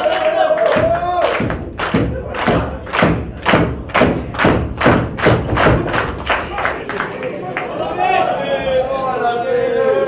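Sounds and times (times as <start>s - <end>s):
audience beating a steady rhythm: 0.0s - 7.8s.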